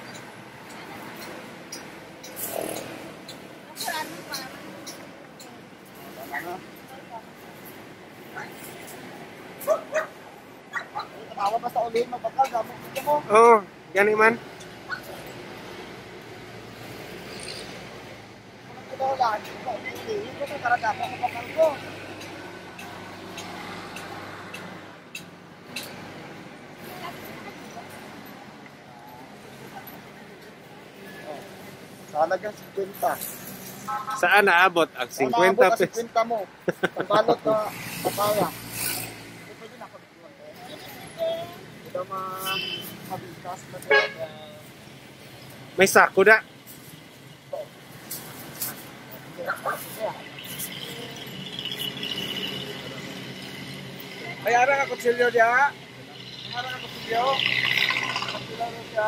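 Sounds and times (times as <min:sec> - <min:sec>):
street and market noise: 0:00.0 - 0:59.0.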